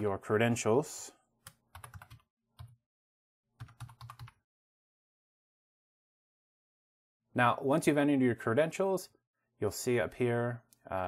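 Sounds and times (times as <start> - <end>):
keyboard keystrokes: 1.5 - 2.8, 3.6 - 4.4.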